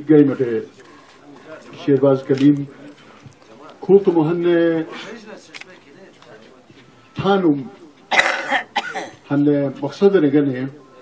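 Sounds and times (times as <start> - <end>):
man speaking: 0.0 - 8.0, 9.2 - 11.0
short cough: 8.1 - 9.2.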